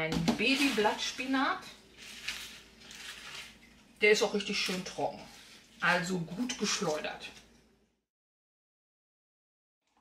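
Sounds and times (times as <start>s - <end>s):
leaves rustling: 0.4s - 7.0s.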